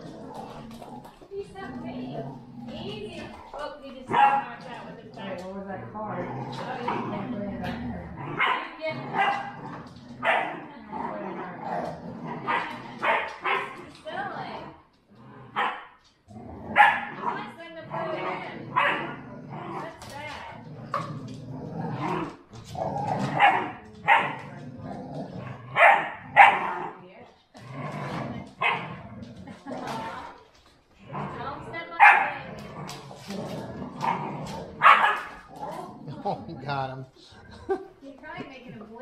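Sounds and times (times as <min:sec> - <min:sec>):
dogs growling: 0:00.0 - 0:39.0
dogs barking: 0:04.0 - 0:04.6, 0:08.2 - 0:09.6, 0:10.2 - 0:10.7, 0:12.4 - 0:13.8, 0:15.5 - 0:16.0, 0:16.7 - 0:19.2, 0:23.3 - 0:24.5, 0:25.7 - 0:26.9, 0:28.6 - 0:28.9, 0:31.4 - 0:32.5, 0:34.0 - 0:35.6.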